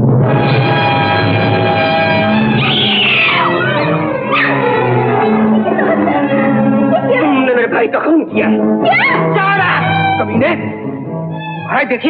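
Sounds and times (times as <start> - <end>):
orchestral score sustained chords: 0.0 - 11.2.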